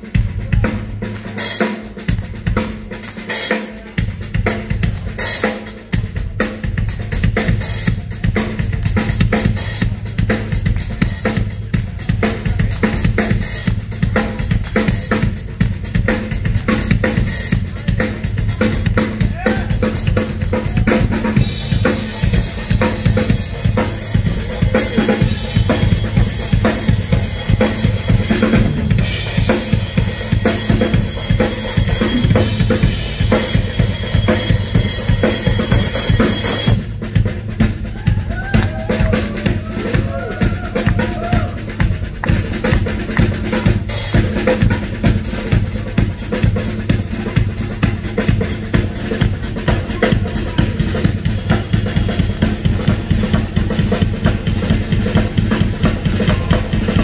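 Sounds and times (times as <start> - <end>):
drum kit solo: 0.0 - 57.0.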